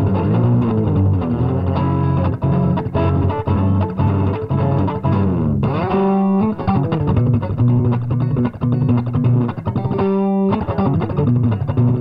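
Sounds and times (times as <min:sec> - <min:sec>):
electric guitar picking low notes: 0:00.0 - 0:12.0.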